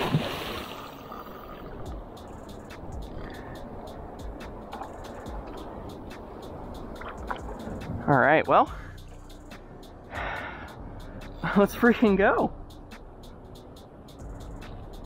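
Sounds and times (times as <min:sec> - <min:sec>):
fish splashing: 0:00.0 - 0:01.8
water noise: 0:00.0 - 0:08.6.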